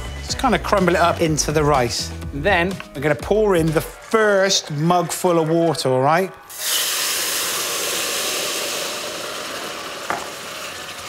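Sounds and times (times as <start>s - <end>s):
water hissing in a hot pan: 6.5s - 11.0s.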